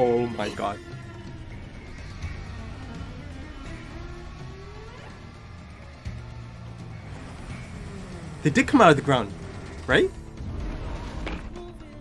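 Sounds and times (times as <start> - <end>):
soundtrack music: 0.0 - 12.0
gliding held tones: 0.4 - 9.0
low rumble: 0.8 - 12.0.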